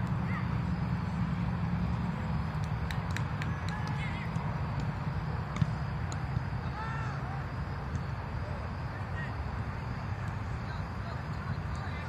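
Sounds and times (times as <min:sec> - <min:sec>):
distant players shouting: 0:03.0 - 0:04.8, 0:05.5 - 0:12.0.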